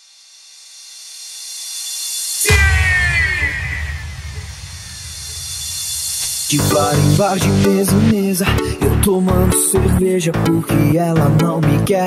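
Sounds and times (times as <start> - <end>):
falling sweeping tone: 1.0 - 7.8
deep rumble: 2.4 - 8.1.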